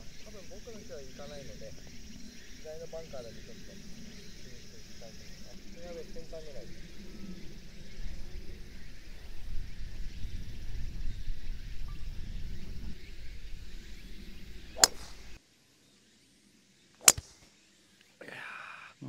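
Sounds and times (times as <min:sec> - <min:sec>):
wind rumbling on microphone: 0:00.0 - 0:15.4
golf driver striking ball: 0:14.8 - 0:15.4, 0:17.0 - 0:17.4.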